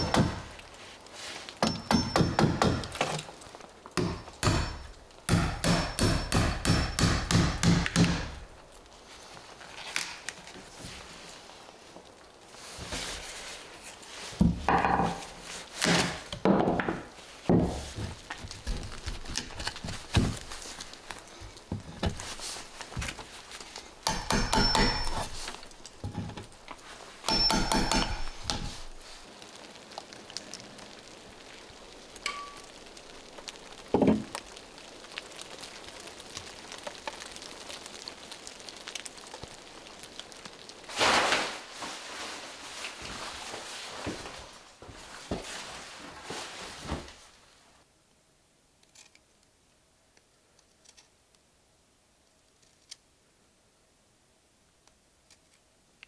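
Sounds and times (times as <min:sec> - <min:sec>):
hammer striking chisel in wood: 0:01.6 - 0:03.1, 0:04.0 - 0:08.4, 0:24.0 - 0:25.3, 0:27.3 - 0:28.7.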